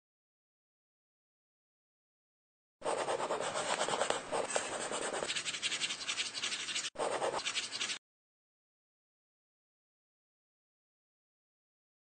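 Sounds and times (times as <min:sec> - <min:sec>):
pen scratching on paper: 0:02.8 - 0:08.0.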